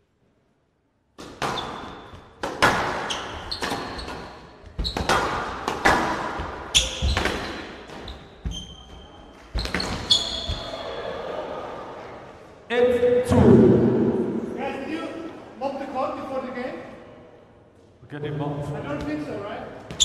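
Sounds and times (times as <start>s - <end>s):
shoes squeaking on court floor: 1.3s - 10.9s, 19.8s - 20.0s.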